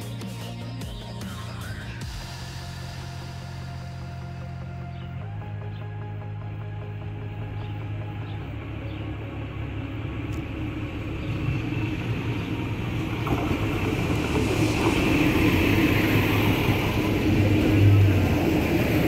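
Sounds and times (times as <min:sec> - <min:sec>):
diesel train engine drone: 0:00.0 - 0:19.0
wheel and rail noise: 0:06.0 - 0:19.0.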